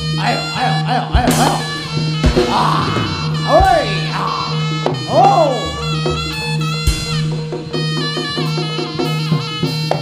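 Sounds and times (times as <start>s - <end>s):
gamelan music: 0.0s - 10.0s.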